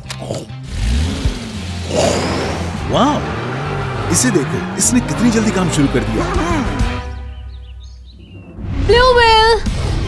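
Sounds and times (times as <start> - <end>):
cartoon background music: 4.0 - 10.0.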